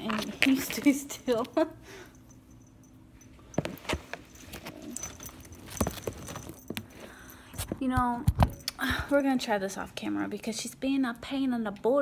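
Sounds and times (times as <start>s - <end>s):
harness buckle clicks and jingles: 2.1s - 7.7s.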